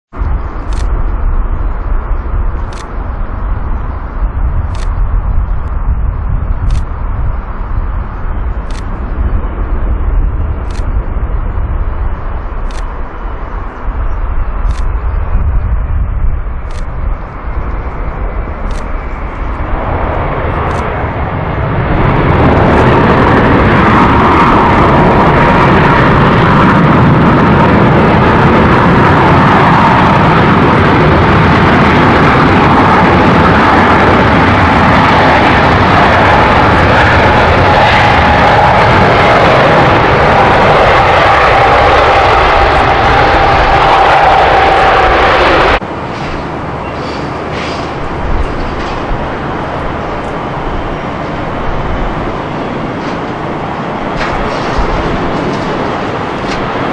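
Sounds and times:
jet engines roaring: 0.1s - 56.9s.

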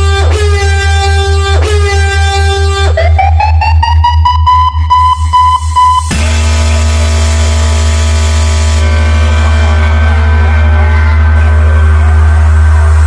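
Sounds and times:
deep bass drone: 0.0s - 13.0s.

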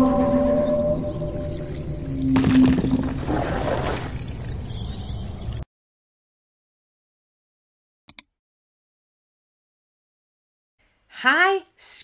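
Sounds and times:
gliding wailing tones: 0.0s - 2.4s.

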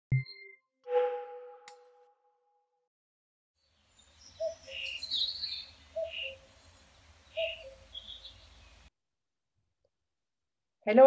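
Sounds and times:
birds chirping: 3.6s - 8.9s.

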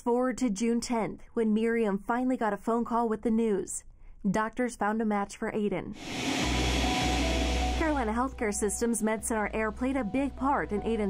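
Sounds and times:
jet engines running: 6.0s - 8.2s.

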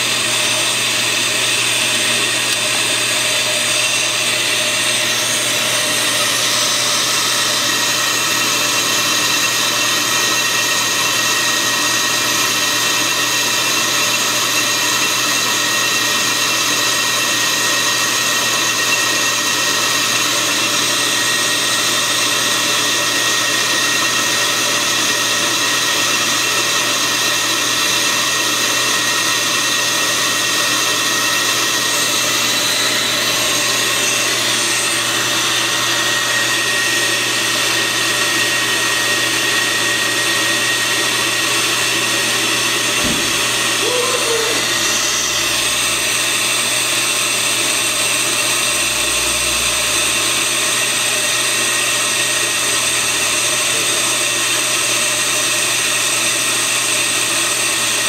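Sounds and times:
brake lathe whirring with ringing tone: 0.0s - 58.0s.

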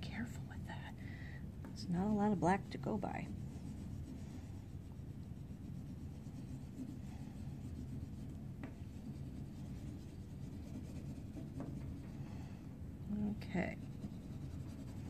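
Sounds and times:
low steady hum: 0.0s - 15.0s
oil pastel scratching on paper: 1.8s - 12.6s, 13.2s - 15.0s.

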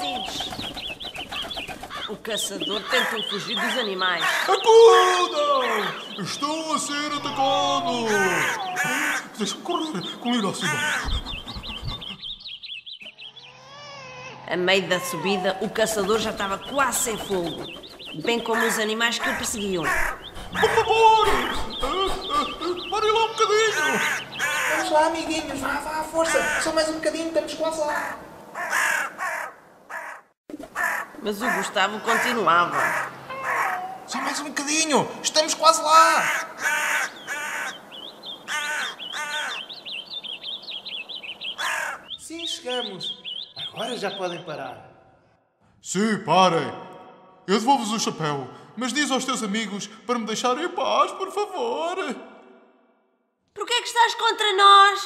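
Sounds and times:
bird chirping: 0.0s - 45.4s
crow cawing: 1.8s - 6.2s, 7.2s - 9.4s, 10.6s - 11.6s, 18.4s - 27.1s, 27.8s - 34.4s, 36.0s - 40.0s, 41.4s - 42.2s.

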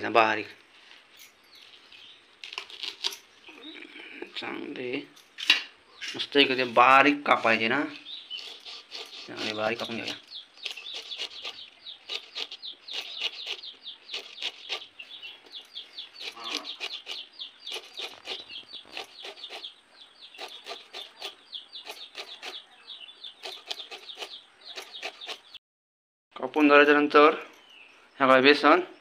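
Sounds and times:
birds chirping: 0.0s - 25.6s, 26.4s - 29.0s
hen clucking: 10.8s - 25.6s.

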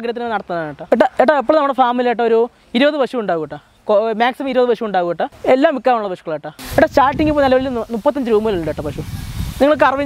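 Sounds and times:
person speaking: 0.0s - 10.0s
hissing noise: 6.6s - 10.0s.

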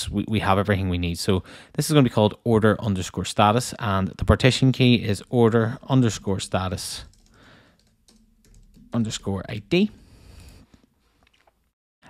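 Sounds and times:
faint keyboard typing: 6.1s - 10.6s.

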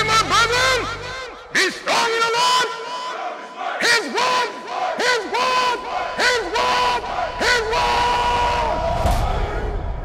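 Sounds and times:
group of voices shouting: 2.6s - 9.9s.

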